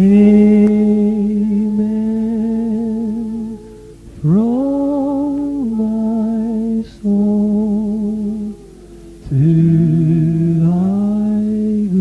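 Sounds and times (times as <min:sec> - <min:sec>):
slow vocal melody: 0:00.0 - 0:12.0.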